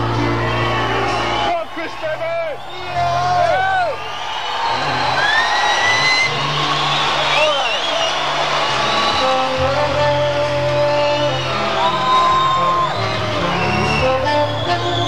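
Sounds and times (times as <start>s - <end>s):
bass line: 0.0s - 1.5s, 8.7s - 15.0s
live rock band: 0.0s - 1.5s, 8.3s - 15.0s
crowd whooping: 0.0s - 15.0s.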